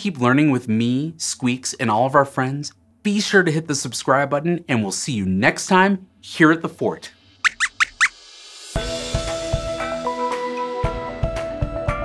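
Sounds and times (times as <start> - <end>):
high squeaks: 7.4 - 8.1.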